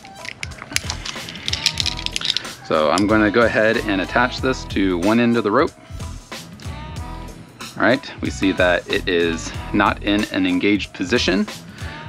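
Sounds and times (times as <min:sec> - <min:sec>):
metallic clicks of climbing gear: 0:00.0 - 0:02.6
background music: 0:00.0 - 0:12.0.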